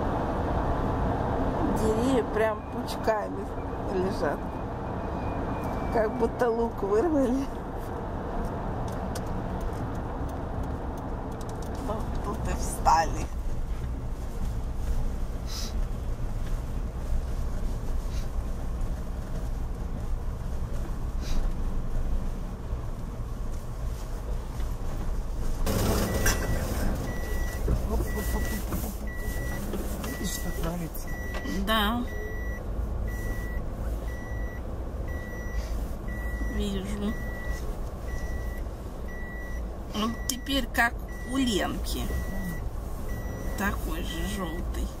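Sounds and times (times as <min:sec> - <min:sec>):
engine and tyre rumble: 0:00.0 - 0:45.0
car warning beeps: 0:02.0 - 0:06.4, 0:25.7 - 0:44.9.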